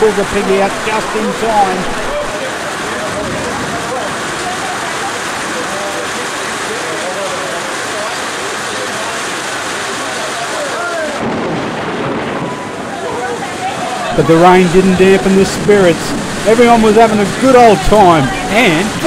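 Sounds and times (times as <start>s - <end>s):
people chattering: 0.0s - 11.3s, 12.2s - 19.0s
steady rain falling: 0.0s - 19.0s.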